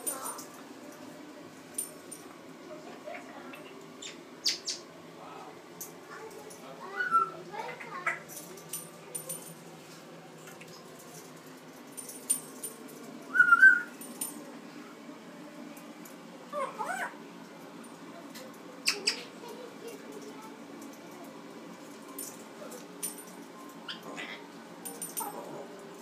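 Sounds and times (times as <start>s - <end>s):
parrot chirping: 4.0s - 4.9s, 6.9s - 8.2s, 13.3s - 13.9s, 18.8s - 19.3s
parrot squeaky call: 7.0s - 7.4s, 13.3s - 13.9s.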